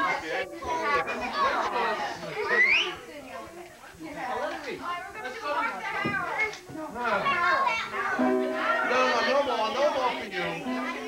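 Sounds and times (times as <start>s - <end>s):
party chatter: 0.0s - 11.0s.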